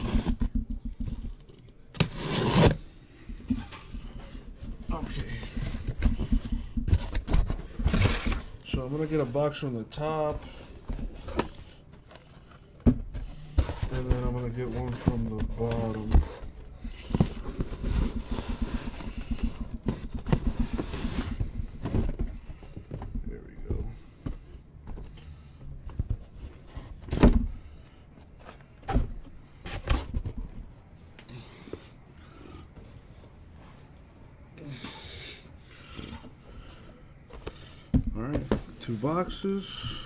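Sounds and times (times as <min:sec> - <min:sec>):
cardboard rustling and scraping: 0:00.0 - 0:02.9, 0:03.5 - 0:23.8
boxes knocking when set down: 0:12.8 - 0:24.0.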